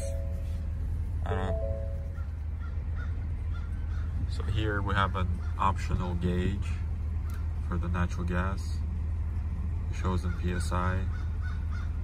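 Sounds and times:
engine idling low rumble: 0.0 - 12.0.

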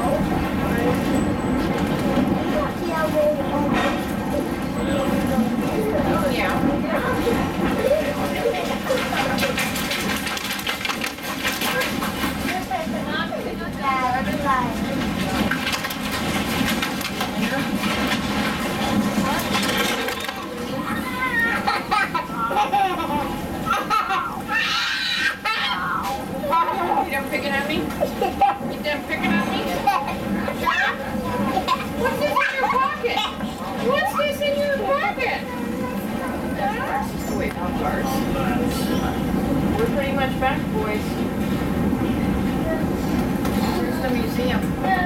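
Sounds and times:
children chattering and playing: 0.0 - 45.0
train running noise: 0.0 - 45.0.

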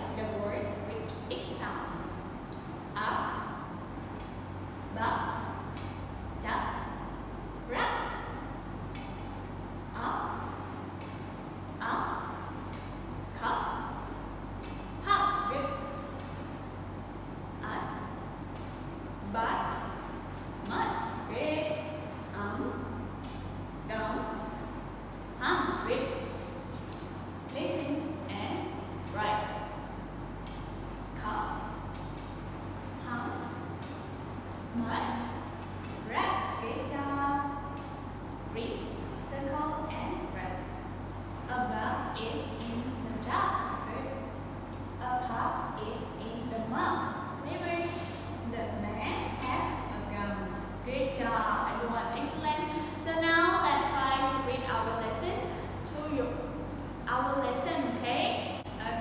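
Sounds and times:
woman speaking: 0.0 - 2.2, 2.9 - 9.3, 9.9 - 16.7, 17.6 - 24.7, 25.4 - 29.8, 31.1 - 32.2, 33.0 - 34.0, 34.6 - 44.4, 45.0 - 59.0
steady low hum: 0.0 - 59.0.

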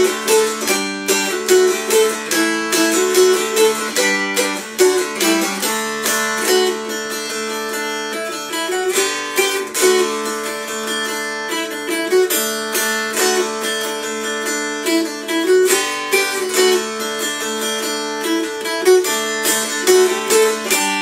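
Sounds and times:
strummed dulcimer dance tune: 0.0 - 21.0.

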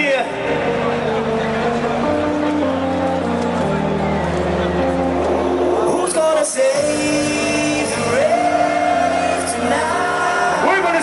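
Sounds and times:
electronic music over pa: 0.0 - 11.0.

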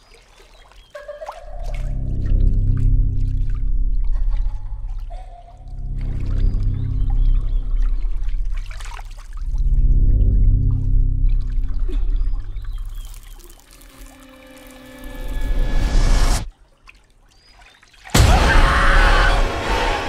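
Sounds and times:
watery swishing effects: 0.0 - 17.0
droning horror film score: 1.5 - 13.1, 13.8 - 16.5, 18.2 - 20.0.

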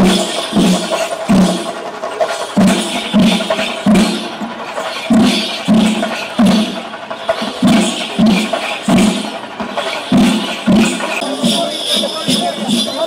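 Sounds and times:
crowd noise: 0.0 - 13.0
procession drums beating: 0.0 - 13.0.

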